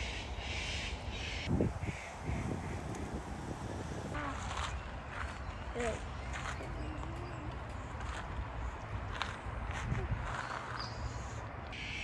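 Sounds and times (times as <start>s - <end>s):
harsh cawing bird calls: 0.0s - 3.1s, 10.4s - 12.0s.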